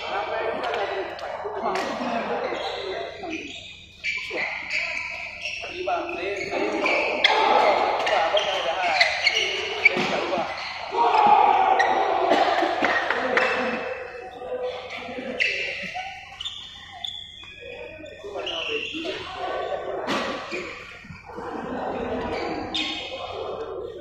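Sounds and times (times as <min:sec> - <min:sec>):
players' voices: 0:00.0 - 0:24.0
rackets hitting shuttlecock: 0:07.1 - 0:10.5, 0:20.1 - 0:20.9.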